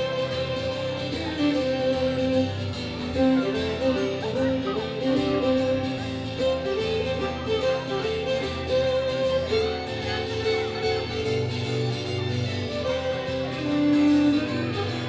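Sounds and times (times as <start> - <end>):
fiddle melody: 0.0 - 15.0
strummed acoustic guitar: 0.0 - 15.0.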